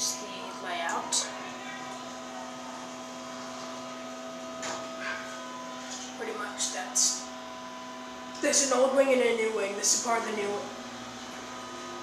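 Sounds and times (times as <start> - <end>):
elevator electric hum: 0.0 - 12.0
steady whining tones: 0.0 - 12.0.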